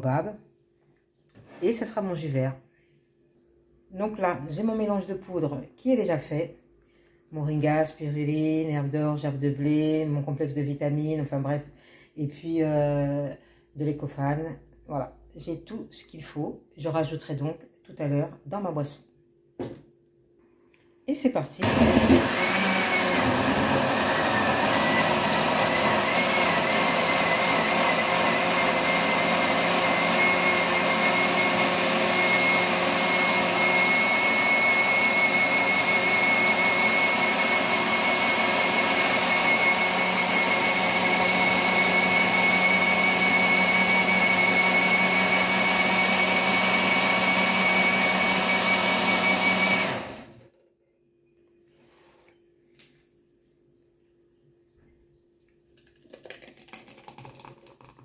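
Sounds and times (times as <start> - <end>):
blender motor running: 21.6 - 50.4.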